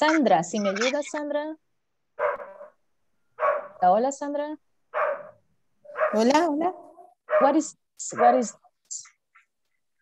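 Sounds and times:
dog barking: 2.2s - 2.8s, 3.4s - 3.8s, 4.9s - 6.3s, 7.3s - 8.6s.

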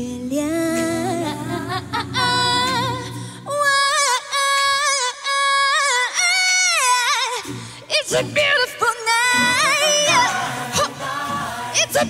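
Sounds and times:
high-pitched sung vocal: 0.0s - 12.0s.

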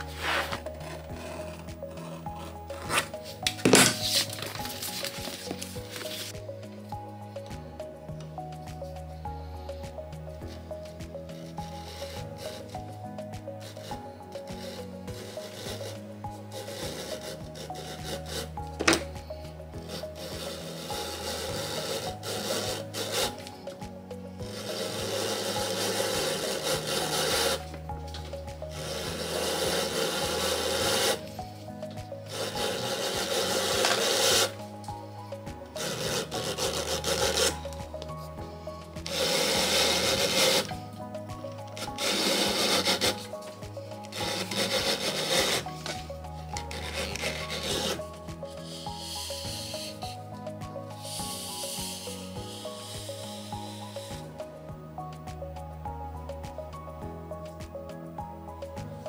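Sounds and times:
leather splitter blade scraping: 0.0s - 6.4s, 16.6s - 19.1s, 32.3s - 34.6s, 35.8s - 37.8s, 41.7s - 43.3s, 44.1s - 46.0s, 46.6s - 48.0s.

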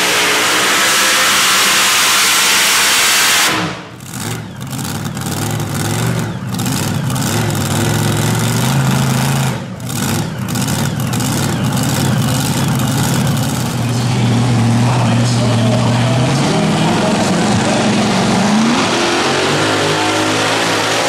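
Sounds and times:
tractor engine at full throttle: 0.0s - 21.0s.

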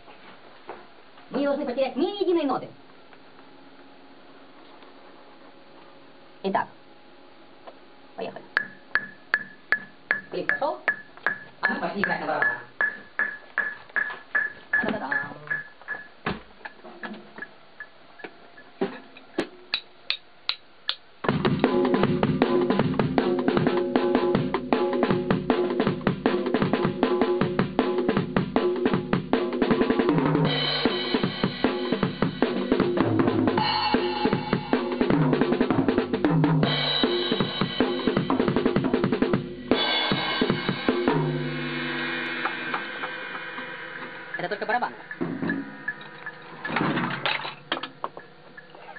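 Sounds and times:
drum kit playing a beat: 8.6s - 16.8s, 17.4s - 46.9s
pitched instruments: 41.9s - 46.8s.

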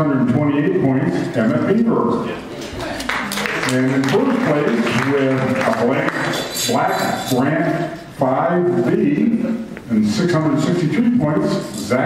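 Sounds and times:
man talking: 0.0s - 2.5s, 3.5s - 12.0s.

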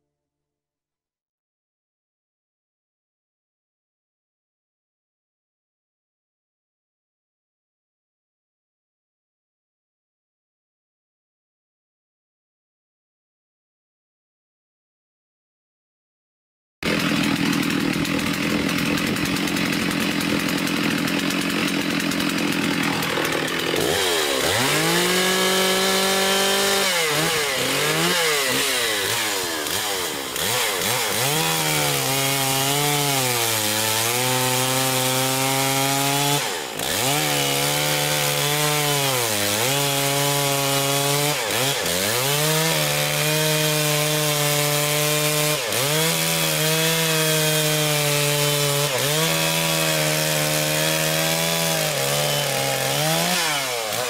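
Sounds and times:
chainsaw cutting log: 16.8s - 54.0s.

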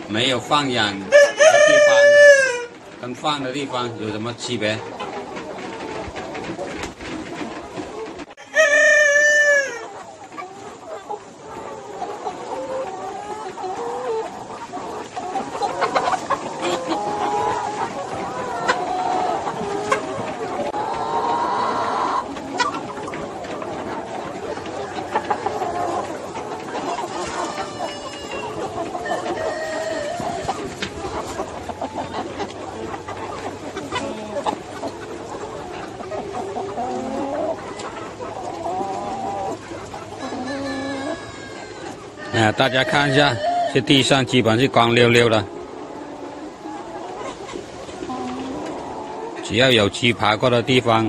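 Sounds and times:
chickens clucking: 0.0s - 51.0s
drawn-out chicken calls: 0.0s - 51.0s.

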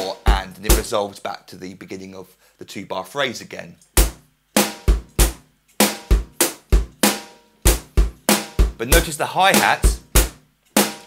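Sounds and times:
bass drum: 0.0s - 1.0s, 4.0s - 11.0s
snare drum: 0.0s - 1.0s, 4.0s - 11.0s
closed hi-hat: 0.0s - 1.4s, 3.4s - 11.0s.

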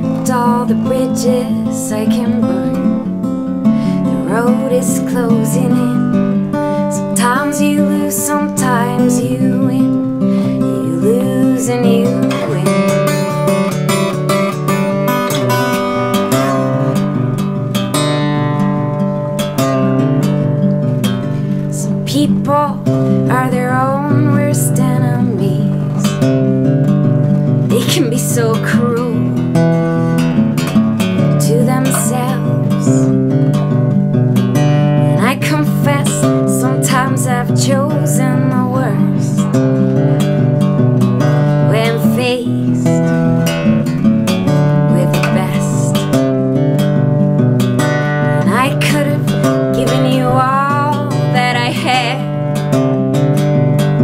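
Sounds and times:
woman singing: 0.0s - 14.0s, 21.5s - 26.3s, 27.7s - 29.6s, 31.2s - 33.2s, 34.9s - 39.6s, 41.2s - 43.6s, 44.5s - 46.2s, 48.1s - 52.8s
acoustic guitar strumming chords: 0.0s - 54.0s.

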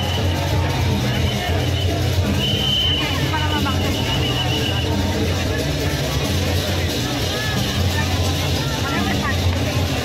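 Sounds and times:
crowd voices and shouts: 0.0s - 10.0s
loud music: 0.0s - 10.0s.

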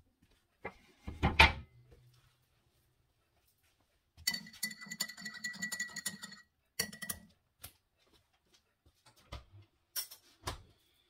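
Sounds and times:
spoon stirring in ceramic mug: 4.2s - 7.4s.

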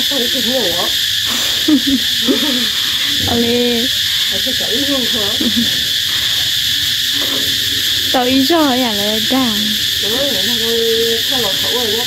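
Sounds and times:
steady high-pitched hiss: 0.0s - 12.0s.

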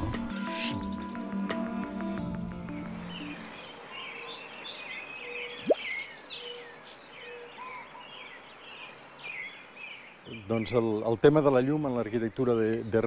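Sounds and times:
birds singing and chirping: 2.7s - 13.0s.

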